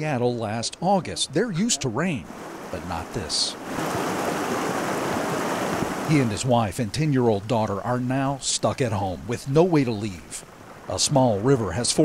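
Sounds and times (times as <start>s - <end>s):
floodwater rushing: 0.6s - 12.0s.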